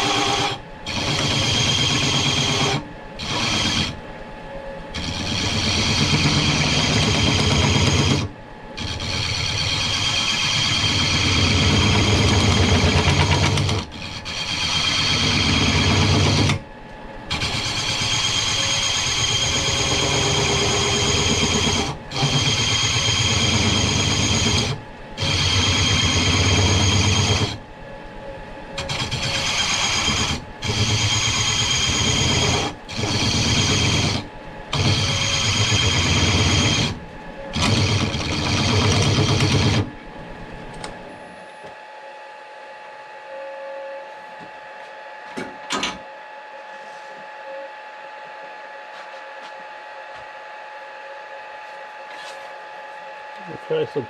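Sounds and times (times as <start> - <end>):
metal cutting on lathe grinding: 0.0 - 4.0, 4.9 - 16.6, 17.3 - 27.6, 28.8 - 39.8.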